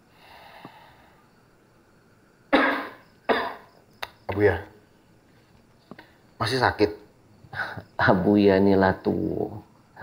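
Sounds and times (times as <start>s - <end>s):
old man coughing: 2.5s - 3.7s.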